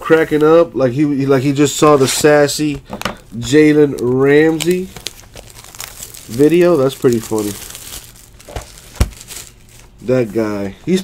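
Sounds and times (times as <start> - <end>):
plastic wrapper crinkling: 2.9 - 10.5.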